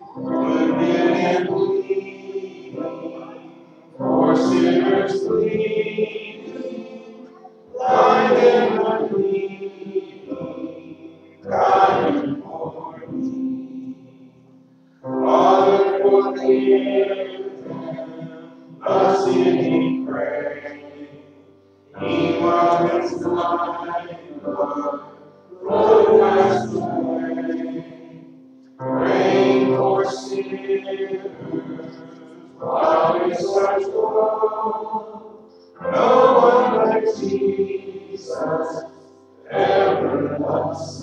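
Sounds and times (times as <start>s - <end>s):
congregation singing a hymn: 0.0s - 41.0s.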